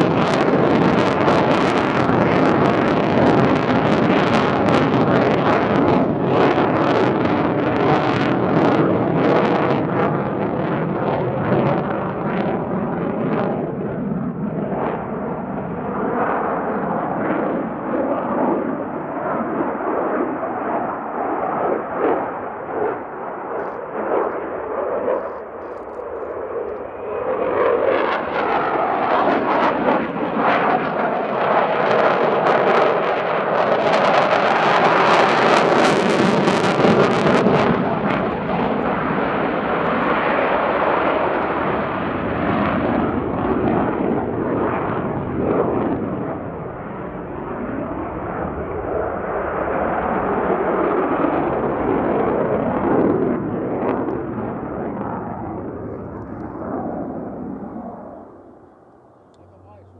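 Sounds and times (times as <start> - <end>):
jet fighter roaring overhead: 0.0 - 59.9.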